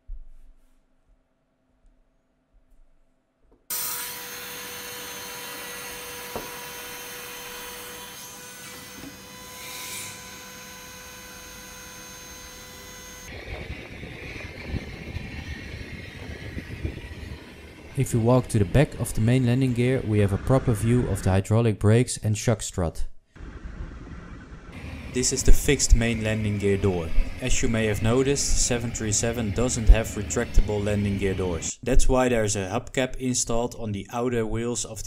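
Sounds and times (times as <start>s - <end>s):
hydraulic hiss and whine: 3.7s - 21.2s, 23.4s - 31.7s
low uneven rumble: 23.4s - 31.7s.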